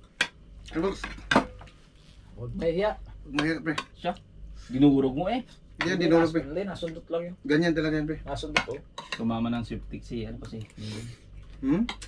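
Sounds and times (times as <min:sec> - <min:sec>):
spoons clinking and scraping plates: 0:08.6 - 0:09.3.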